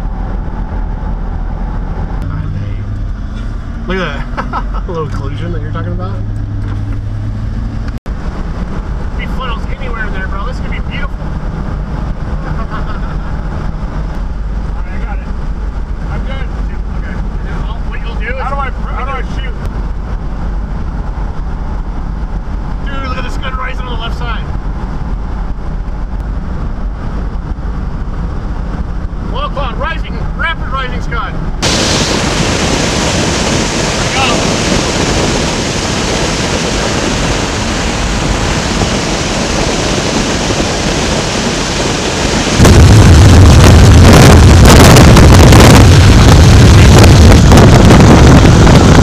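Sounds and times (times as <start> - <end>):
vehicle engine and road noise: 0.0 - 49.0.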